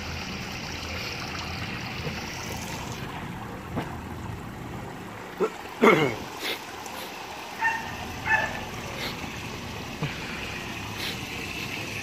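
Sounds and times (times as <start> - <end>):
running water: 0.0 - 12.0
dog yipping: 7.6 - 8.6.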